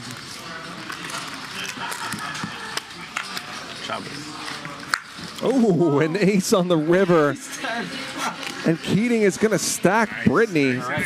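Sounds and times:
murmur of players talking: 0.0 - 11.0.

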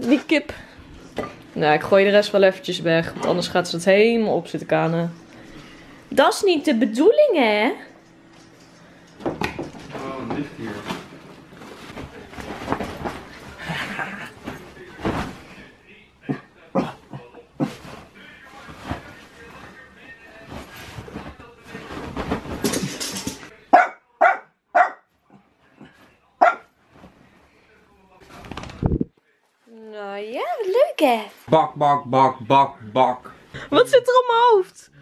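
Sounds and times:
bedding rustling: 8.2 - 16.0, 16.9 - 23.6, 25.8 - 29.0
small dog barking: 23.7 - 25.0, 26.4 - 26.7.

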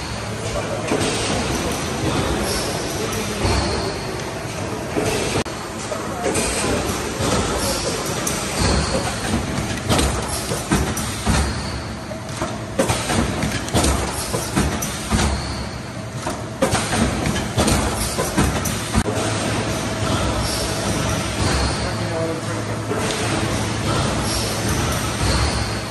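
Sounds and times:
machinery clicks and clacks: 0.0 - 25.9
packaging machinery rumbling: 0.0 - 25.9.

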